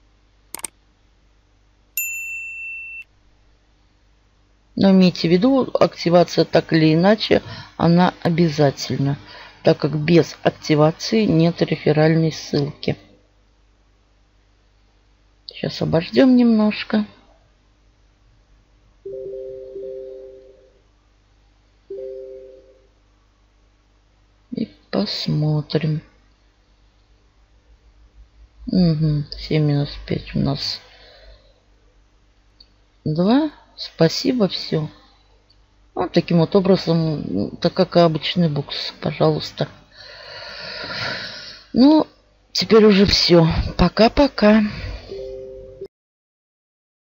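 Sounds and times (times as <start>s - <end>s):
electronic bell ding: 2.0s - 3.1s.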